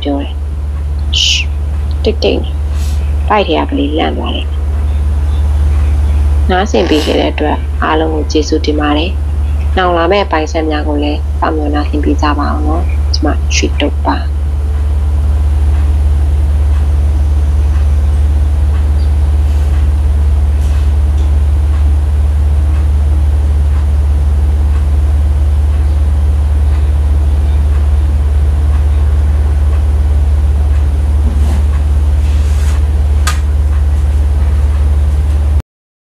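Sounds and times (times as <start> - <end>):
loud deep hum: 0.0 - 35.6.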